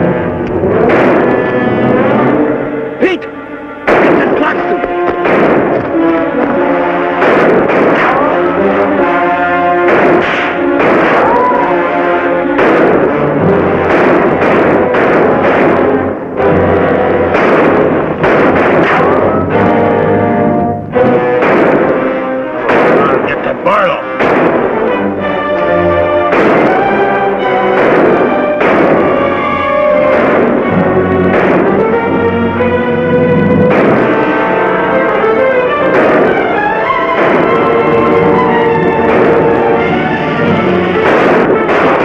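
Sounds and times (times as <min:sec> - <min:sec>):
dramatic orchestral music with brass: 0:00.0 - 0:42.0
gunshots cracking: 0:00.5 - 0:02.4, 0:03.8 - 0:19.8, 0:21.0 - 0:32.8, 0:33.4 - 0:42.0.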